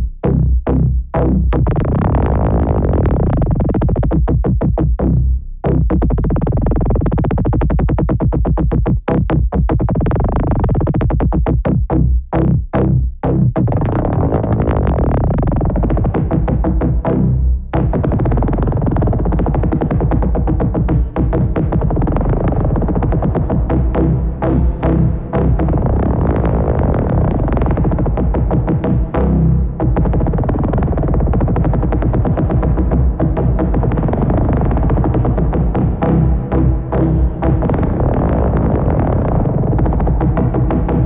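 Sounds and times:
synthesizer sequenced pattern: 0.0 - 41.0.

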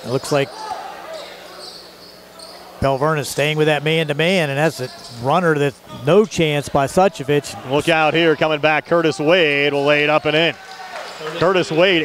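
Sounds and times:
commentator speaking: 2.8 - 10.6, 11.2 - 12.0.

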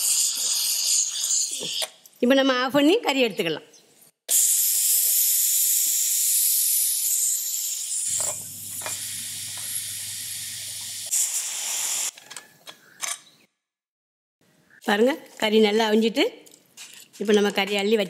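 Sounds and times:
pressure cooker steam hissing: 4.3 - 12.1.

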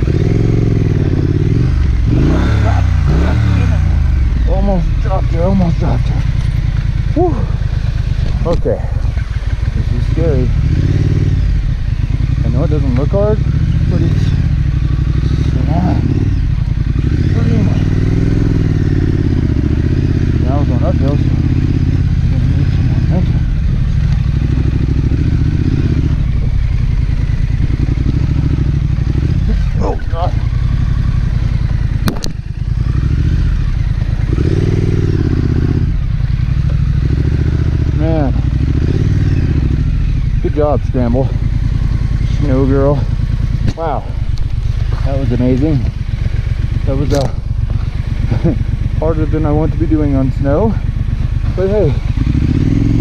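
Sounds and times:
motorcycle engine revving: 0.0 - 53.0
sharp click: 32.0 - 32.4, 47.1 - 47.4.

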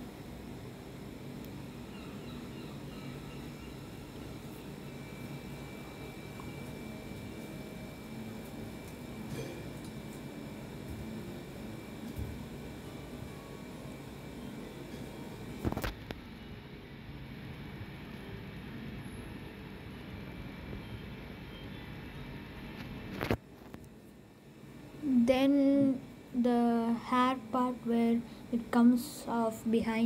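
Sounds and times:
faint constant hum: 0.0 - 30.0.

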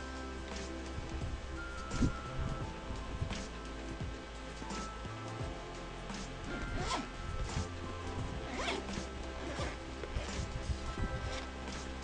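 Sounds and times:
background music: 0.0 - 12.0
zipper being pulled: 6.5 - 7.7, 8.4 - 12.0.

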